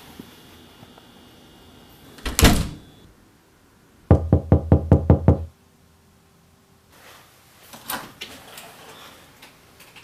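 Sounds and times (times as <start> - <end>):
rapid knocking on wooden door: 4.1 - 5.5.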